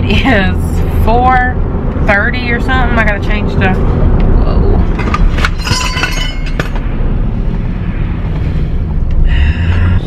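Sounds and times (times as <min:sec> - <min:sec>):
road and engine rumble in cabin: 0:00.0 - 0:10.0.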